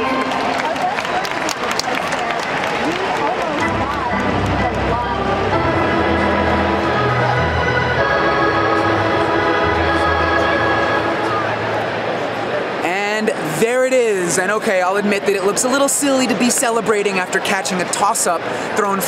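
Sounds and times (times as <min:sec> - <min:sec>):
crowd chatter and shouting: 0:00.0 - 0:19.0
stadium music with bass line: 0:03.6 - 0:12.2.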